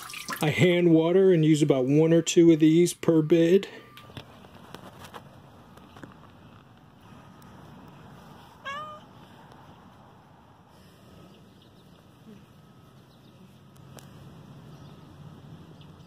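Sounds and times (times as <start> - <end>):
cat meowing: 8.6 - 9.1.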